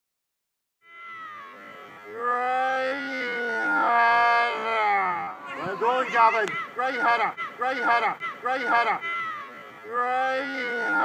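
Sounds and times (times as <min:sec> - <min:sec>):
people shouting long calls: 0:00.8 - 0:11.0.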